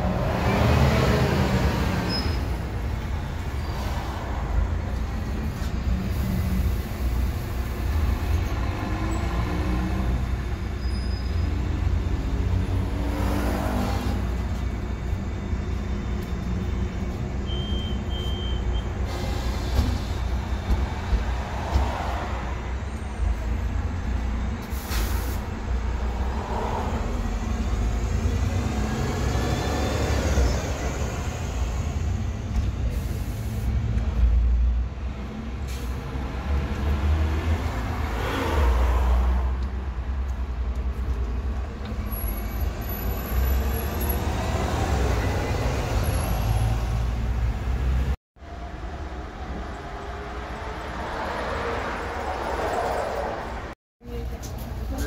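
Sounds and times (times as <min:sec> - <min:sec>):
bus pulling away: 0:00.0 - 0:53.8
bus engines running: 0:00.0 - 0:55.0
air brakes hissing: 0:18.8 - 0:20.4, 0:24.6 - 0:25.6, 0:32.9 - 0:33.8, 0:35.6 - 0:36.1.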